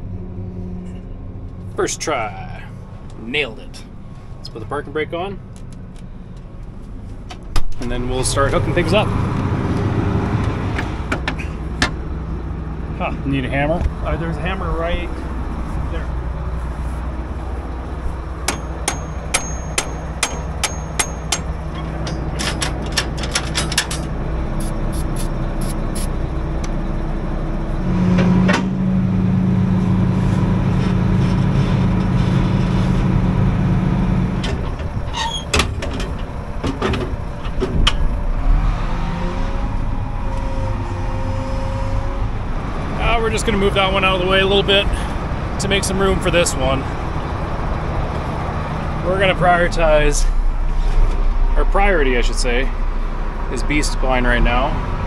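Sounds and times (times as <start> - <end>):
loud steady drone: 0.0 - 5.4, 8.0 - 55.0
engine running steadily: 0.0 - 55.0.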